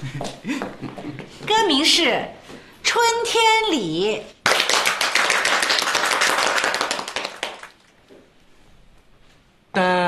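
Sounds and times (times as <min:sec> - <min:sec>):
people clapping fast: 0:04.4 - 0:08.0.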